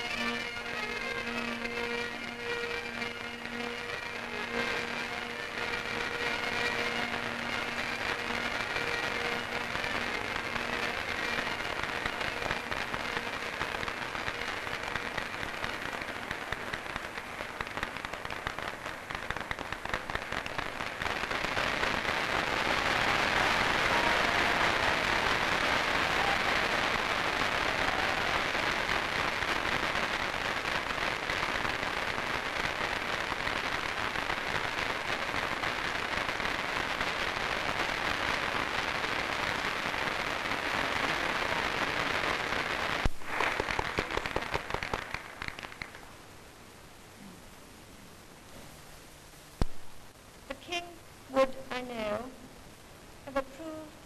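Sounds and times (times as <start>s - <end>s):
crowd applauding: 22.4s - 28.9s, 43.4s - 46.1s.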